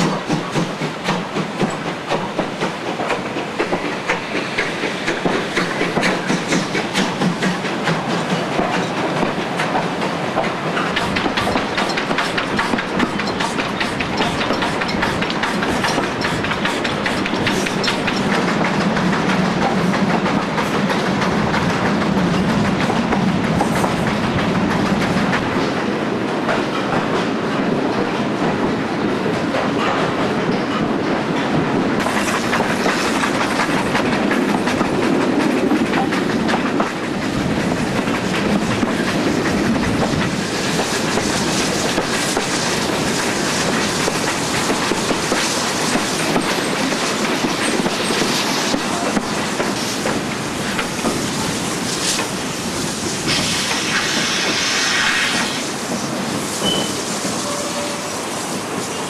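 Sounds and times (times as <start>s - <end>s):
steam train hissing: 0.0s - 59.0s
train wheels rumbling on rails: 0.0s - 59.0s.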